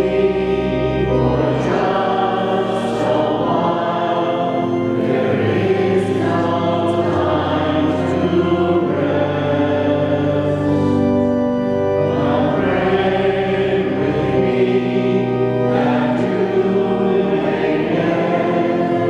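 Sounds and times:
congregation singing a hymn: 0.0 - 19.0
organ chords: 0.0 - 19.0.

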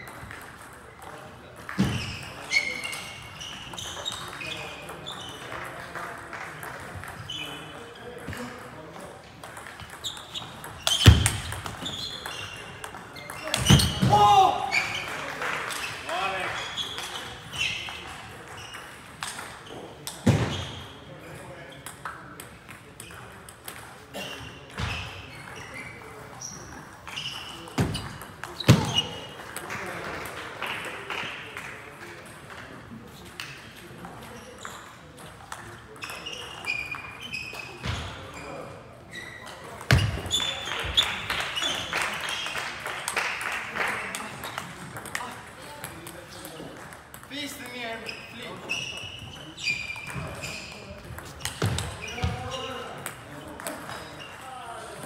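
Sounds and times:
chatter in a sports hall: 0.0 - 55.0.

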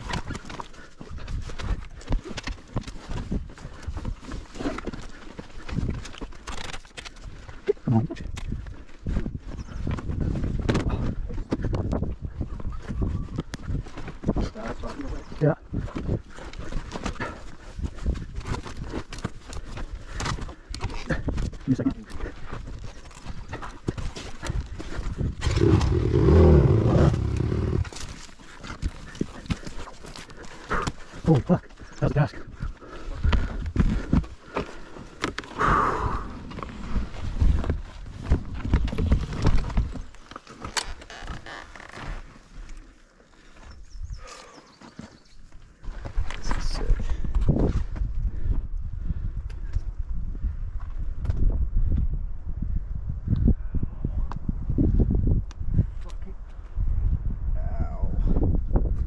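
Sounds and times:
wind rumble on microphone: 7.2 - 31.6, 32.2 - 40.2, 45.8 - 59.0.

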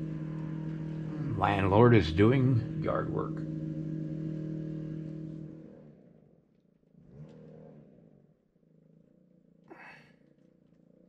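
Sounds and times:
small engine running: 0.0 - 11.0.

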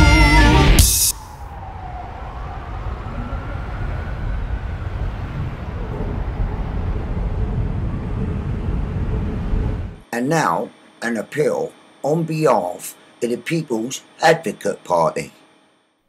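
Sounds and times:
distant siren rising and falling: 0.0 - 10.6
street traffic rumble: 1.1 - 10.1.

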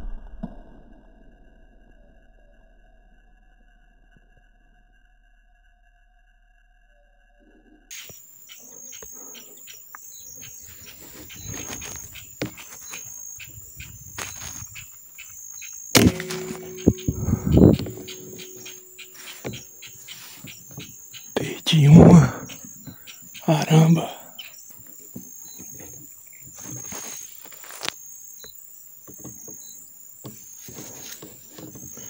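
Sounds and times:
insects chirping: 7.9 - 32.0
rifle shot: 16.0 - 19.0.

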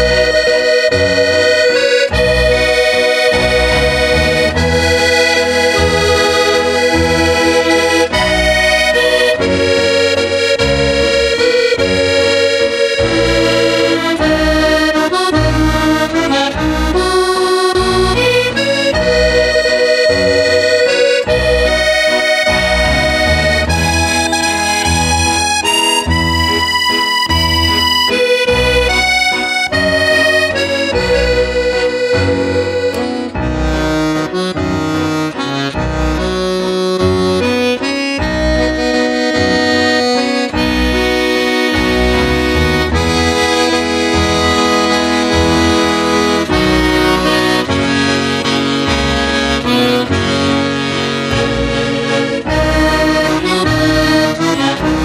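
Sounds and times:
button accordion playing slow tune: 0.0 - 55.0.

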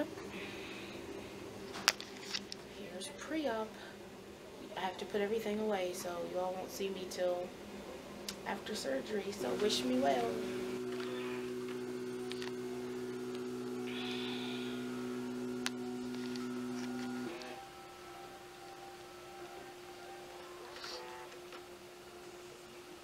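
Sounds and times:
electrical hum from equipment: 0.0 - 23.0
fainter hum: 0.0 - 23.0.

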